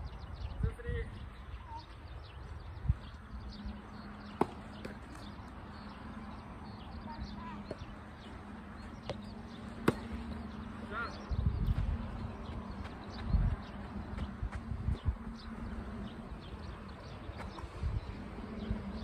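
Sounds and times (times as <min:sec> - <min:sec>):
birds chirping: 0:00.0 - 0:19.0
wind rumbling on microphone: 0:02.1 - 0:03.8, 0:11.2 - 0:19.0
tennis racket hitting ball: 0:09.8 - 0:10.2.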